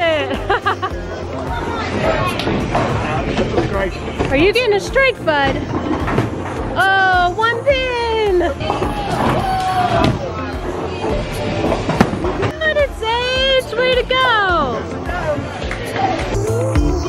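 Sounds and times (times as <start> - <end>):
background music: 0.0 - 17.0
children calling: 8.6 - 11.2
bowling ball rolling down lane: 8.6 - 12.6.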